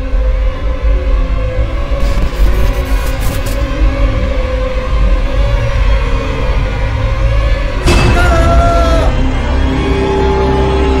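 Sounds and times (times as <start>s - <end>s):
steady low bass: 0.0s - 8.0s.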